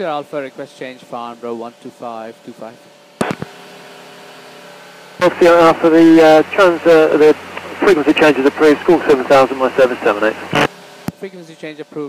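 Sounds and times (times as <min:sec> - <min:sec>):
open radio channel hum: 0:01.1 - 0:04.6, 0:05.2 - 0:11.3
radio clicking: 0:03.2 - 0:03.5, 0:07.5 - 0:11.2.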